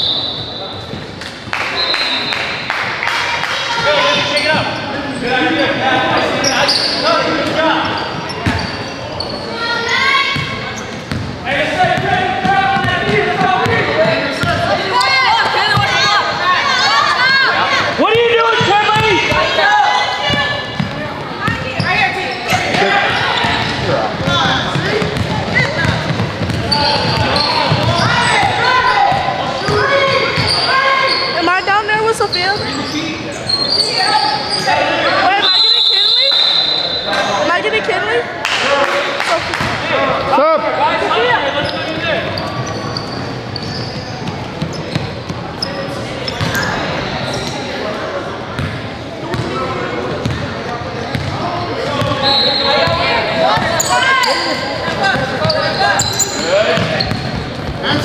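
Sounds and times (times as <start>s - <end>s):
referee's whistle: 0.0s - 0.8s, 1.7s - 2.6s, 32.5s - 37.3s, 52.1s - 53.1s
voices of players and spectators: 0.0s - 58.0s
basketball bouncing on gym floor: 10.4s - 12.1s, 23.5s - 28.2s, 51.1s - 52.1s.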